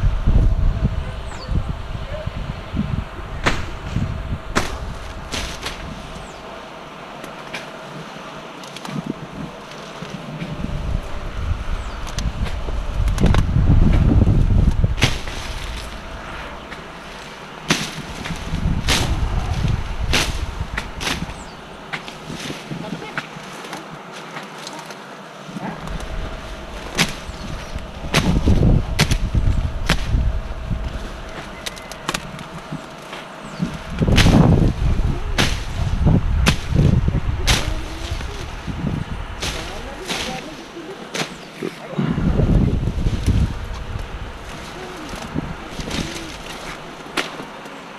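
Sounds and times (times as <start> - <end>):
low rumble: 0.0 - 6.6, 9.0 - 22.8, 25.6 - 40.6, 41.9 - 47.6
foliage rustling and snapping: 1.2 - 47.9.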